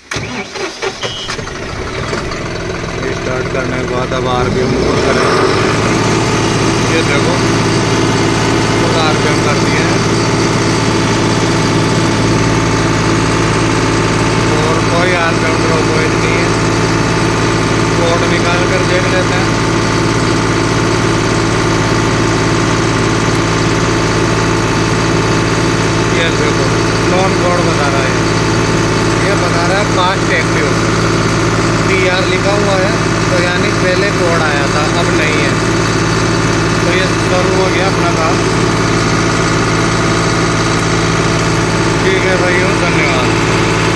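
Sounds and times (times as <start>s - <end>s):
tractor diesel engine idling: 0.0s - 43.9s.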